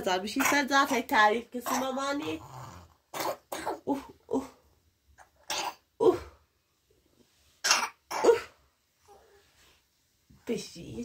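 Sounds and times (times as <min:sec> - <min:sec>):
person coughing: 0:03.2 - 0:04.1, 0:07.6 - 0:08.6.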